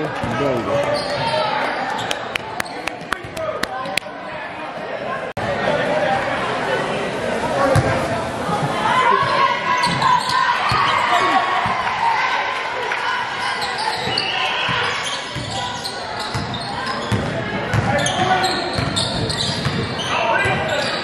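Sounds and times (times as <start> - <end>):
crowd talking and shouting: 0.0 - 21.0.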